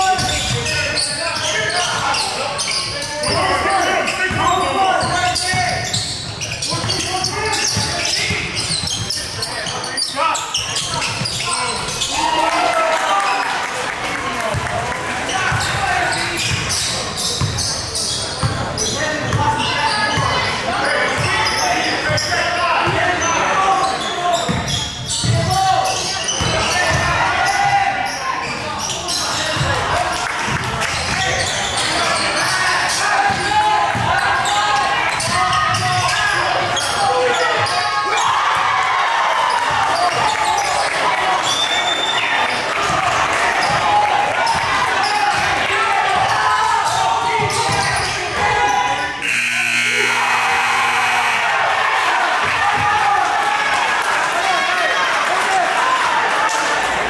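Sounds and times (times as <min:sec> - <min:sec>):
chatter and calls echoing in gym: 0:00.0 - 0:57.0.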